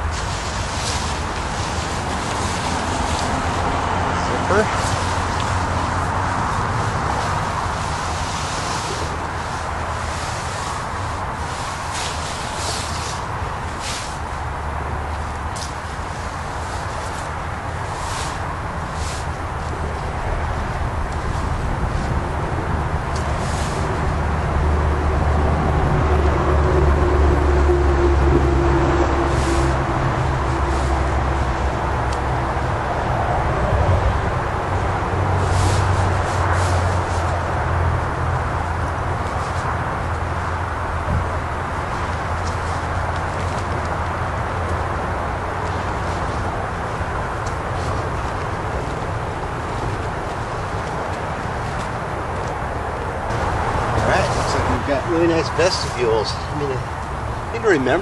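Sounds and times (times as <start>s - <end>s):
nylon tent fabric rustling: 0.0s - 25.5s, 29.2s - 32.0s, 35.4s - 56.9s
steady low rumble: 0.0s - 58.0s.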